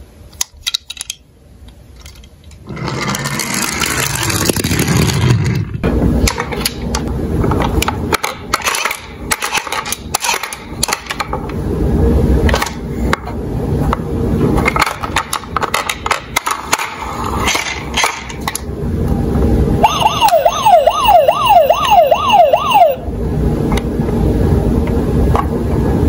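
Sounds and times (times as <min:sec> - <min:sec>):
plastic toy cars rattling in a box: 0:02.0 - 0:05.8, 0:14.6 - 0:18.6.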